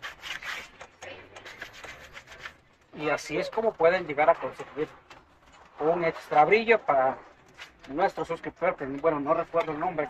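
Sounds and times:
fingers rubbing polish on leather: 0.0s - 2.7s.

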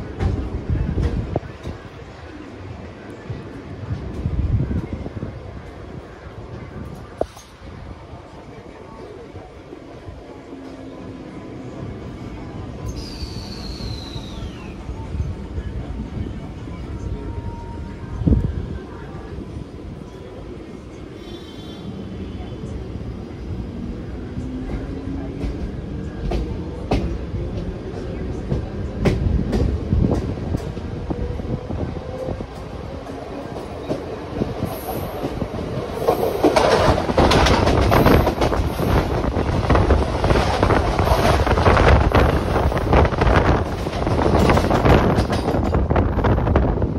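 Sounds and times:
passing train clatter: 0.0s - 46.9s
train wheel rumble: 0.0s - 46.9s.

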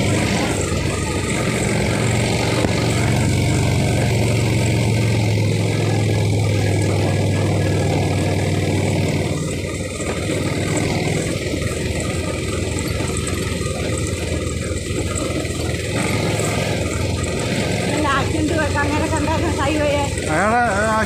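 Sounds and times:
scooter engine running: 0.0s - 21.0s.

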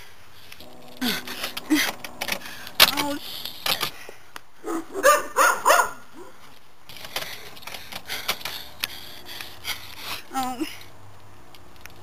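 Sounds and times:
dog barking: 4.6s - 6.4s.

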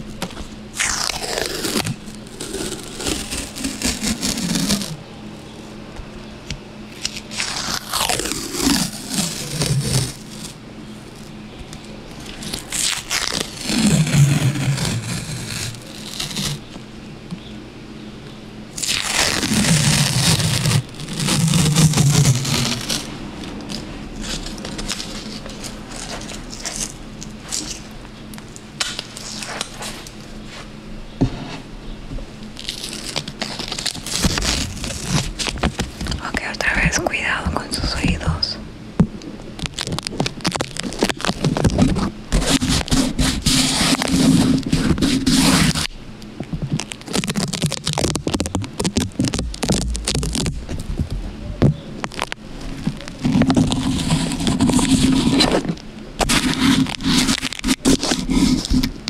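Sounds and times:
masking tape crackling and tearing: 0.0s - 5.0s, 6.9s - 16.8s, 18.7s - 30.7s, 32.4s - 38.5s, 39.4s - 59.0s.

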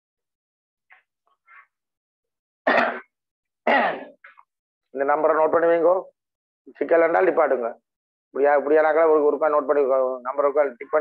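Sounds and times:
man clearing throat: 2.7s - 3.1s, 3.7s - 4.2s.

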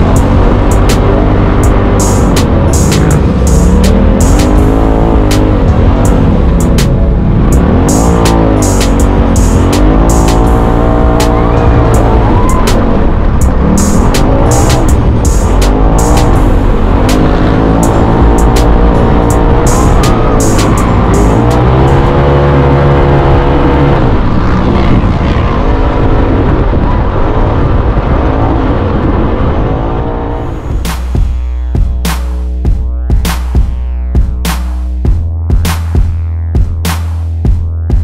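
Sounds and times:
music playing: 0.0s - 25.2s, 30.3s - 38.0s
utility vehicle engine revving: 0.0s - 38.0s.

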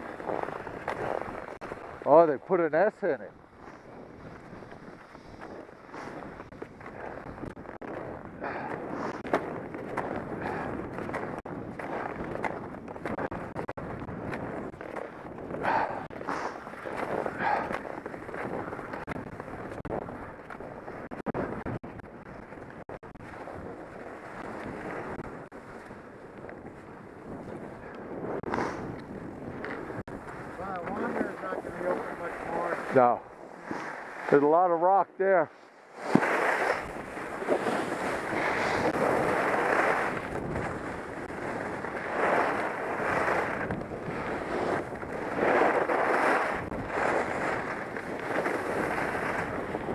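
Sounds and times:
skis scraping over snow: 0.0s - 49.9s
wind on microphone: 3.3s - 34.3s, 35.9s - 49.9s.

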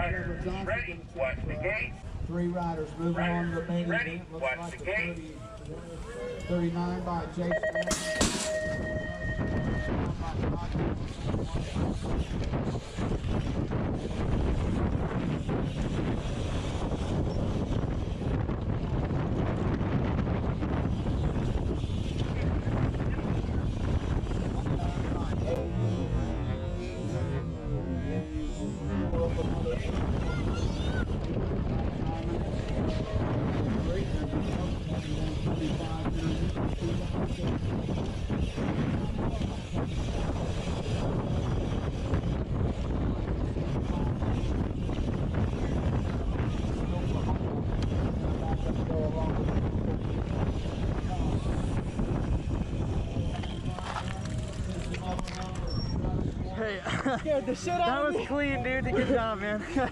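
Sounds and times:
wind buffeting microphone: 8.7s - 59.9s.

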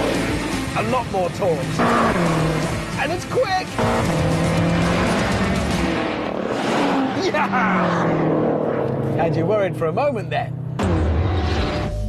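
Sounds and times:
car engines at full throttle: 0.0s - 12.0s.

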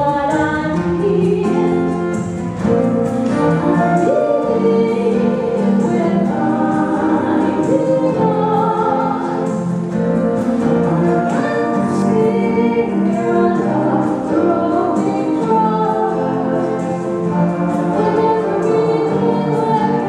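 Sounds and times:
acoustic guitar: 0.0s - 20.0s
woman and man singing: 3.3s - 9.8s, 10.6s - 20.0s.

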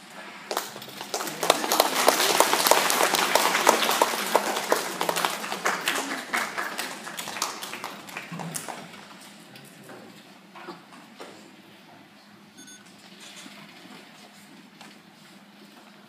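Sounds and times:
audience applauding: 0.5s - 9.3s.

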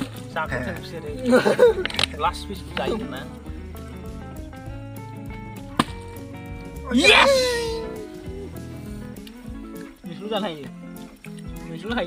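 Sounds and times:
background music: 0.0s - 12.0s
loud cry: 6.8s - 8.6s.

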